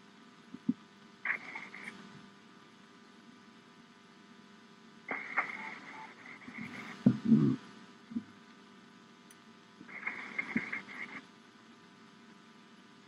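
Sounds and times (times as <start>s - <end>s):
low electrical hum: 0.0s - 13.0s
radio static: 1.2s - 2.0s, 5.1s - 8.2s, 9.8s - 11.3s
muffled thumps: 6.6s - 8.3s.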